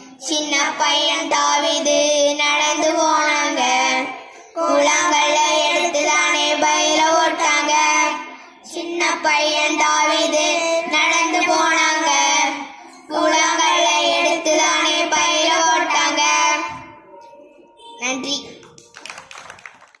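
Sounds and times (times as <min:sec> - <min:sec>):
children singing through pa: 0:00.0 - 0:18.6.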